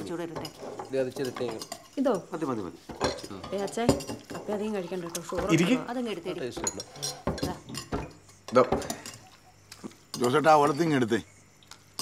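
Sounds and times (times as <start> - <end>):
cutlery clinking against plates: 0.0 - 5.8, 6.4 - 11.1
voices: 0.0 - 11.8.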